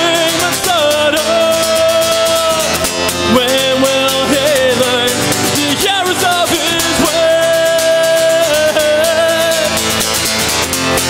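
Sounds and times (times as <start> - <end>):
man singing held notes: 0.0 - 9.8
strummed acoustic guitar: 0.0 - 11.0.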